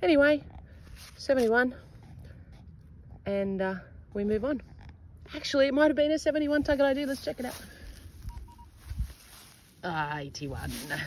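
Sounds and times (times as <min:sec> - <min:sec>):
metal detector beeps: 0:08.2 - 0:08.8.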